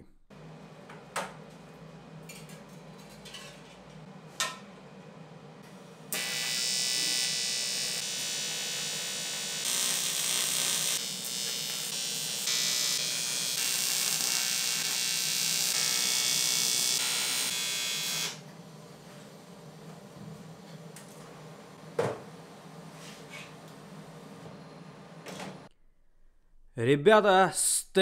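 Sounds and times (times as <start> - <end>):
welding arc buzzing: 6.1 - 18.4.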